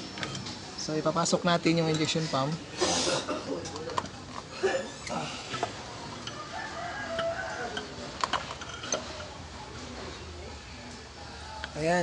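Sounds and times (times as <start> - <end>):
rooster crowing: 6.3 - 8.0.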